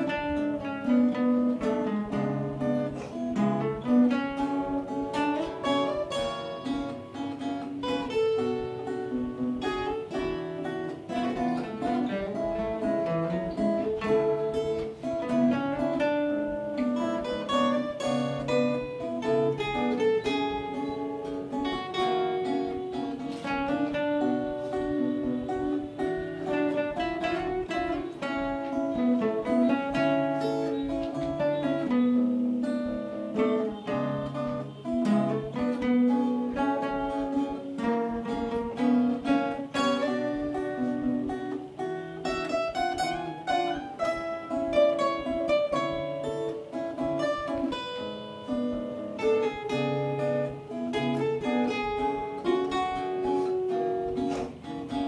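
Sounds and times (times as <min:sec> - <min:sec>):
acoustic guitars playing: 0:00.0 - 0:55.0.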